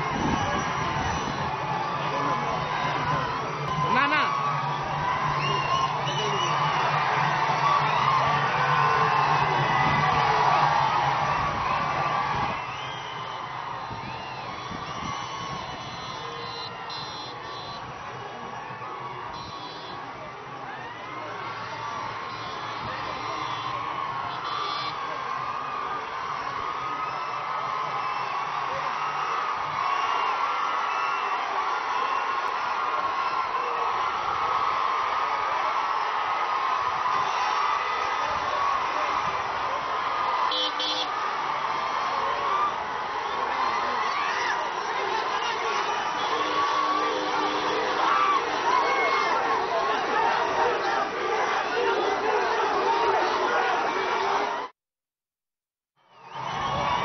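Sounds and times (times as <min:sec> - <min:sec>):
crowd cheering and whooping: 0:00.0 - 0:54.8, 0:56.0 - 0:57.0.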